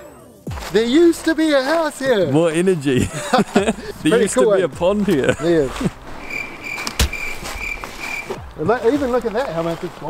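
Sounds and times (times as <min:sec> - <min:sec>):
high pulsing cricket-like chirp: 0:06.2 - 0:08.4.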